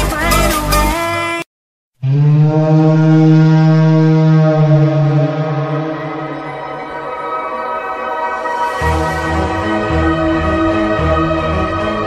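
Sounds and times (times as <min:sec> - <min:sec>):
low sustained synthesizer note: 0:02.1 - 0:12.0.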